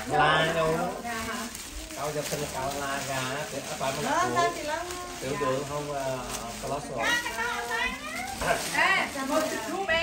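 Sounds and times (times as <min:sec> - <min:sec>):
people talking animatedly: 0:00.0 - 0:10.0.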